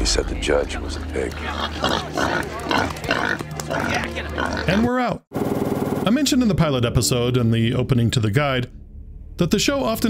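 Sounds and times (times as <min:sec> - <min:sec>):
pigs grunting: 0:00.0 - 0:04.9
low droning music: 0:05.4 - 0:10.0.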